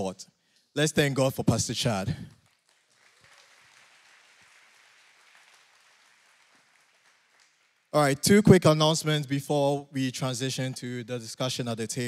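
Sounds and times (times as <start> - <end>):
faint applause: 2.4 - 7.9.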